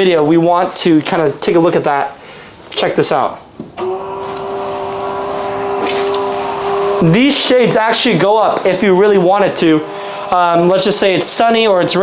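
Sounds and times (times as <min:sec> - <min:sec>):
window shade motor humming: 0:03.8 - 0:12.0.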